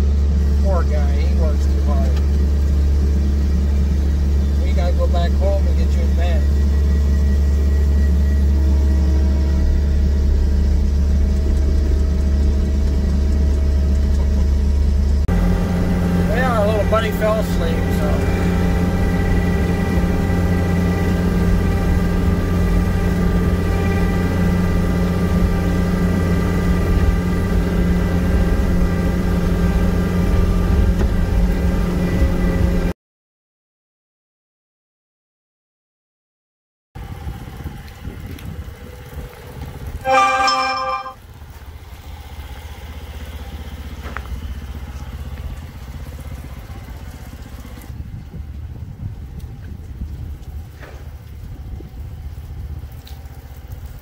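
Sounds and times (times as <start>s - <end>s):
loader engine drone: 0.0s - 32.9s, 38.7s - 48.0s
bucket pushing snow: 16.2s - 18.4s.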